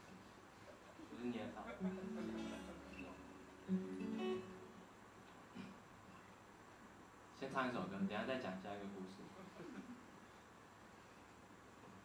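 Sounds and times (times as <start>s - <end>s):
acoustic guitar strums: 1.8s - 4.9s.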